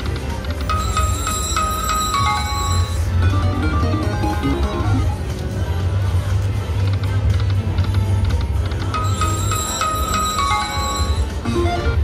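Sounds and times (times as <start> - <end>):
slot machine plucked melody: 0.0 - 5.6, 7.2 - 12.0.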